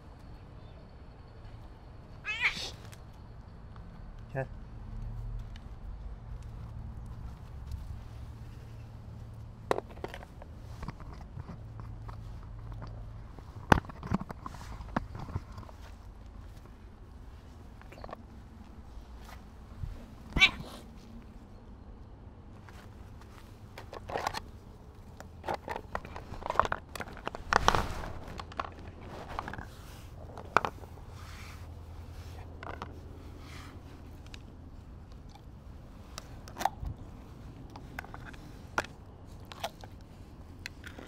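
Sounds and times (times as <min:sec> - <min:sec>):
cat meowing: 0:02.2 - 0:02.8, 0:20.3 - 0:20.8.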